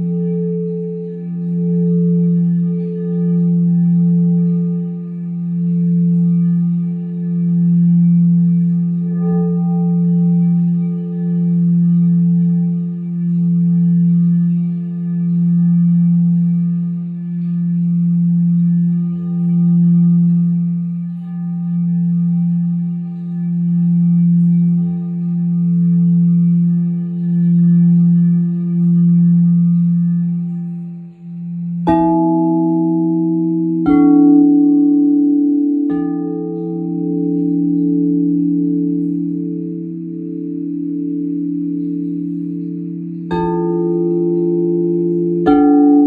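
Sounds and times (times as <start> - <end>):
higher bowl struck ringing: 0.0 - 46.0
singing bowl low tone: 0.0 - 46.0.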